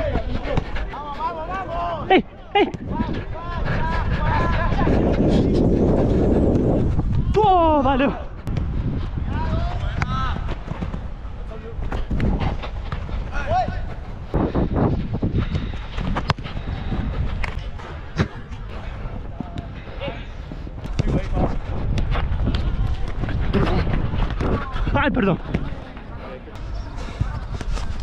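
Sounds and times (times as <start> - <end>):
wind rumble on microphone: 1.5 - 28.0
running footfalls: 8.5 - 25.8.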